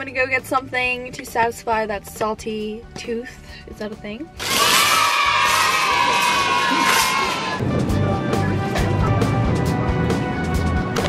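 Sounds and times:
crowd cheering and shouting: 4.4s - 7.6s.

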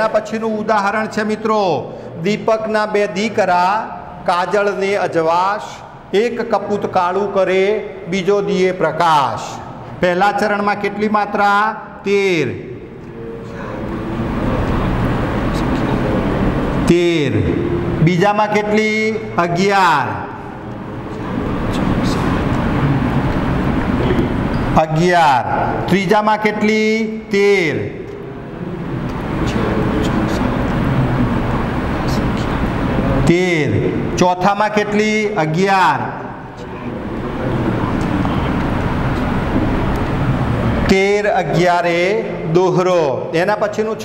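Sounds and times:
low rumbling noise: 0.0s - 44.0s
vehicle passing by: 12.9s - 19.4s, 20.3s - 24.8s, 27.9s - 34.2s.

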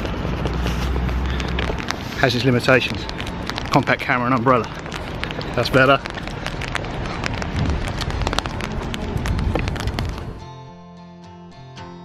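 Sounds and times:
rain ticking on umbrella: 0.0s - 10.5s
low rumble: 0.0s - 10.7s.

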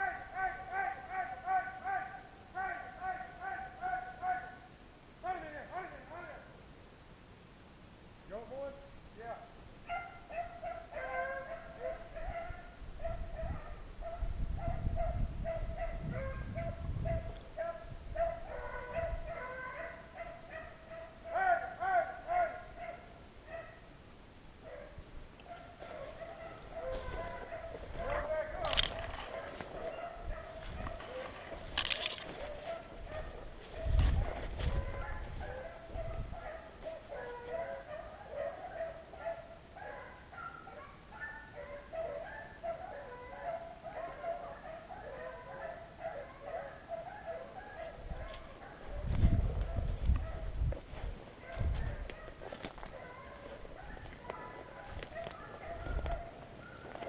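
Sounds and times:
distant hounds baying: 0.0s - 4.8s, 9.8s - 24.0s, 24.6s - 57.0s
dry brush crackling: 25.7s - 35.5s
low rumbles on microphone: 48.9s - 52.1s.

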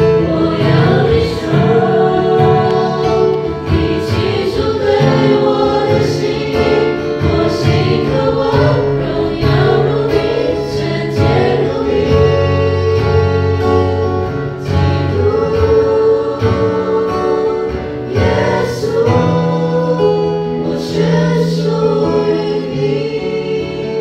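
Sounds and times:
choir singing worship song: 0.0s - 24.0s.

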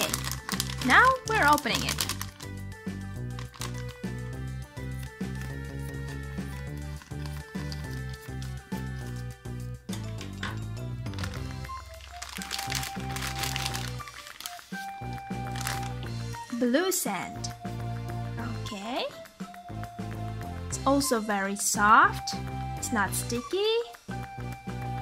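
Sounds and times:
scissors cutting plastic: 0.0s - 2.6s, 3.2s - 4.2s, 6.4s - 9.2s, 11.1s - 14.9s
plastic bag crinkling: 0.0s - 4.2s, 4.8s - 9.2s, 11.0s - 16.0s
background music: 0.0s - 25.0s.

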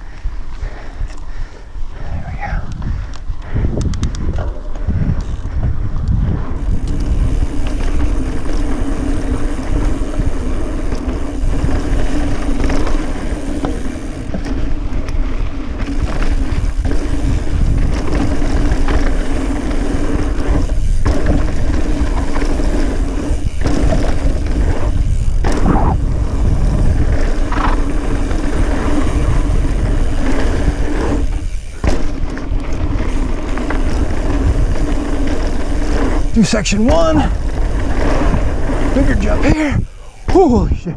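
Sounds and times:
bike tyres rolling over dirt: 0.0s - 40.9s
wind rushing over microphone: 0.0s - 40.9s
steady buzz: 2.9s - 40.9s.

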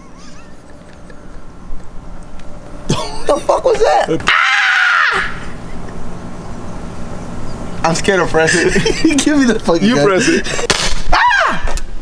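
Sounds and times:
faint low hum: 0.0s - 10.7s.

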